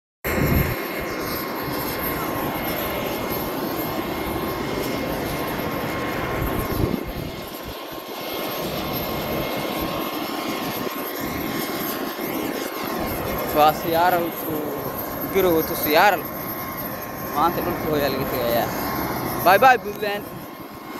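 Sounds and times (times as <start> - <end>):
aircraft engine running: 0.3 - 20.9
high whine: 10.8 - 20.9.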